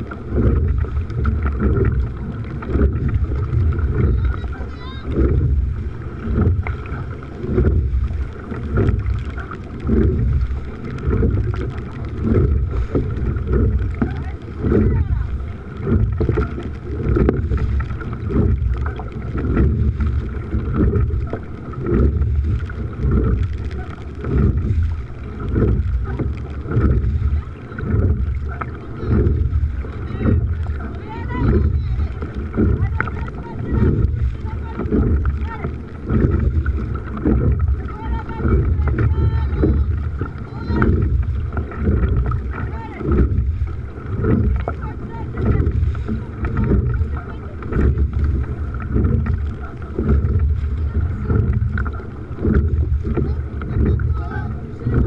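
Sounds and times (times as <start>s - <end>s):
oar strokes surging: 0.0s - 55.0s.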